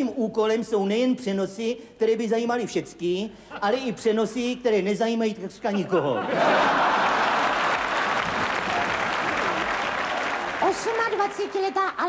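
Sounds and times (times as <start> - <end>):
audience applauding: 6.5 - 12.0.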